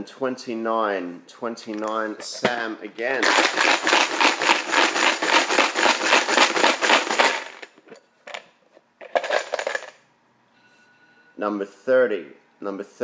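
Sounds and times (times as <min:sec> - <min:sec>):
plastic tokens rattling in box: 0:03.2 - 0:07.7, 0:09.0 - 0:10.0.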